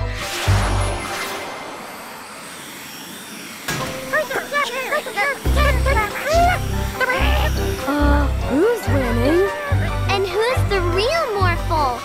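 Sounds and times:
rushing jet noise: 0:00.2 - 0:11.6.

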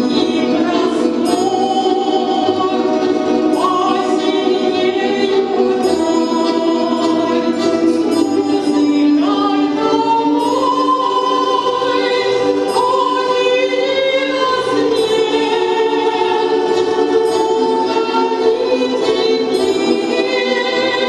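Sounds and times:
woman singing into microphone: 0:00.0 - 0:21.0.

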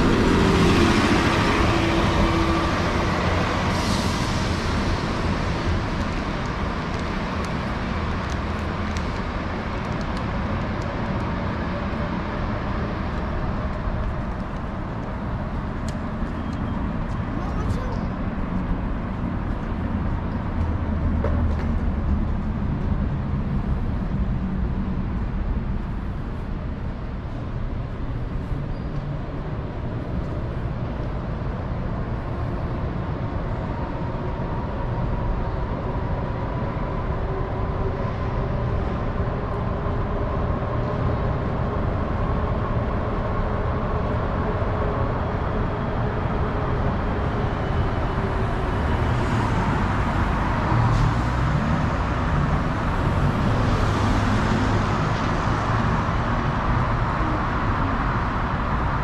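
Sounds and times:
street traffic: 0:00.0 - 0:59.0
trolleybus passing: 0:00.0 - 0:59.0.

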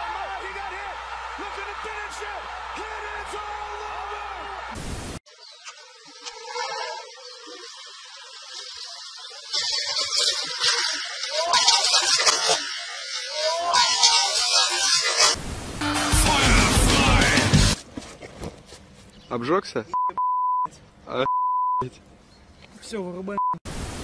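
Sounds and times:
arena noise: 0:00.0 - 0:04.8
voices: 0:00.0 - 0:04.8
man talking: 0:00.3 - 0:04.4, 0:16.1 - 0:17.6.

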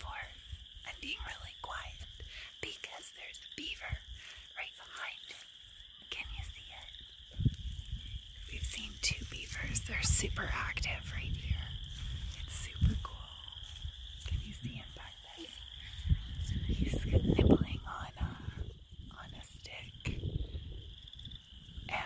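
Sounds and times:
woman whispering: 0:00.0 - 0:07.0, 0:08.4 - 0:20.4.

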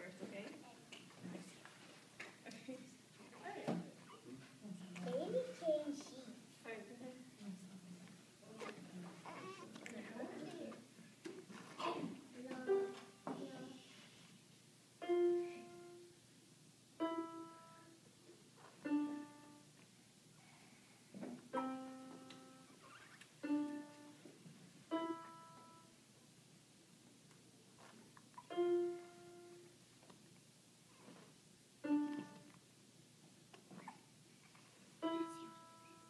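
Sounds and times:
electronic keyboard piano notes: 0:15.0 - 0:16.1, 0:17.0 - 0:18.0, 0:18.8 - 0:19.6, 0:21.5 - 0:22.8, 0:24.9 - 0:26.0, 0:28.4 - 0:29.7, 0:35.0 - 0:36.0.

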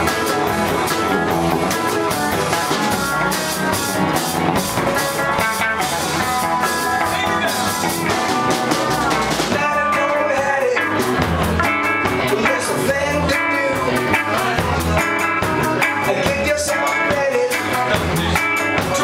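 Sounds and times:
drum kit: 0:00.0 - 0:19.0.

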